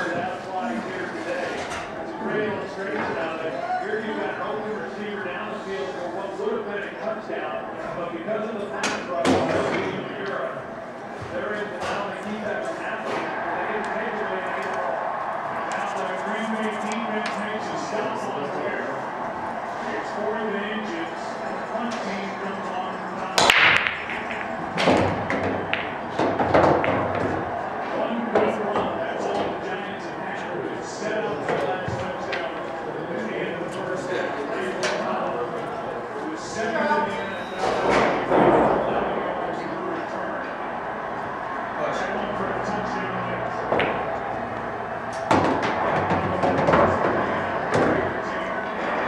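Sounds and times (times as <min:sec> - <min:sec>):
billiard balls clicking and knocking: 0:23.4 - 0:27.5
cue ball cracking into rack: 0:23.4 - 0:27.5.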